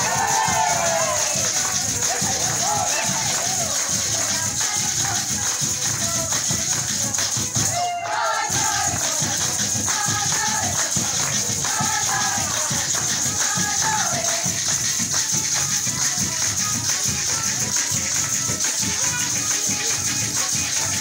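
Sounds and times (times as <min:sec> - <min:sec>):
hand drum: 0:00.0 - 0:21.0
maracas shaking: 0:00.0 - 0:21.0
voices singing: 0:00.0 - 0:21.0.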